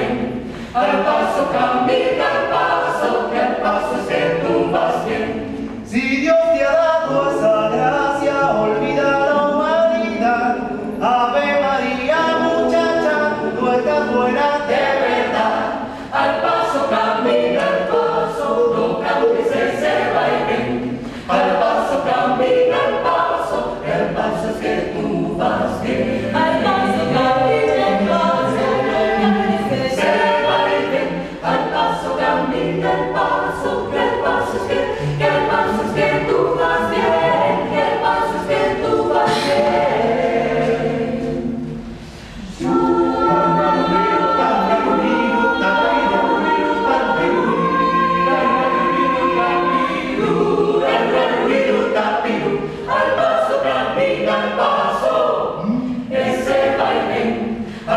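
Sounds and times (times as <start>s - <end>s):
mixed choir singing a cappella: 0.0s - 57.9s.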